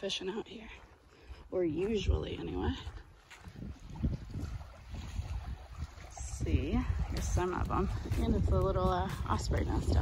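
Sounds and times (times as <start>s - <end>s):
wind rumbling on microphone: 1.3s - 10.0s.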